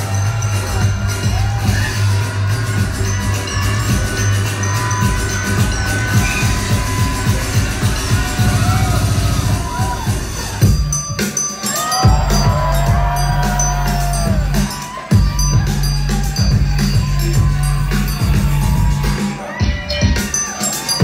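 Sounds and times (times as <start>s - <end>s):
heavy driving bass line: 0.0s - 11.0s, 12.0s - 20.2s
electronic dance music: 0.0s - 21.0s.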